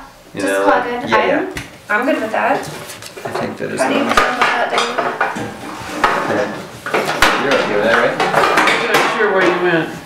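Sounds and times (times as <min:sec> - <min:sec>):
paper rustling: 0:02.5 - 0:03.7.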